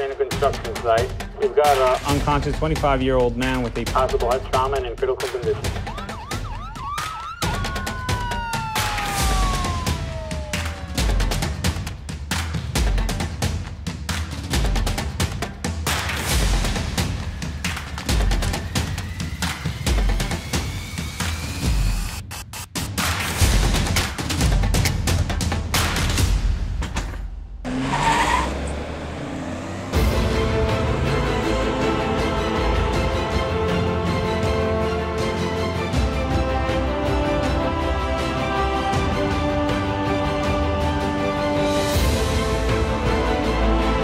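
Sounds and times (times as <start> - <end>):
emergency vehicle siren: 5.5 - 12.0
vehicle engines rumbling: 27.7 - 34.0.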